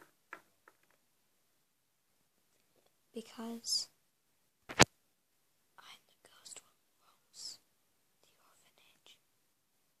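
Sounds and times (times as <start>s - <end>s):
person whispering: 3.1s - 3.9s, 5.8s - 7.6s, 8.2s - 9.2s.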